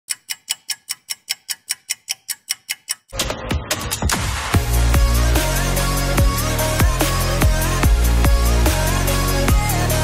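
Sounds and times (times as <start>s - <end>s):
clock ticking: 0.1s - 4.3s
electronic intro music: 3.2s - 10.0s.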